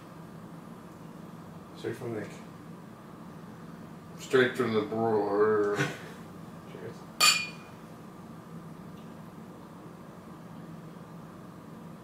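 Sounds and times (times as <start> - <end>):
beer glasses clinking: 7.2 - 7.7.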